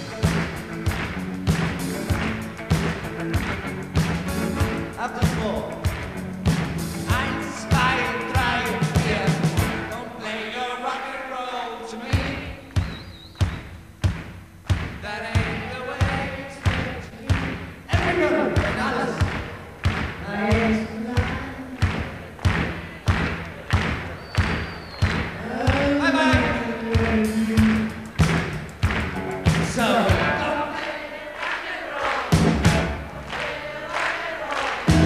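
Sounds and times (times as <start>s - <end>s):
kick drum beat: 12.2s - 30.4s
voices singing: 15.0s - 28.4s, 29.1s - 35.0s.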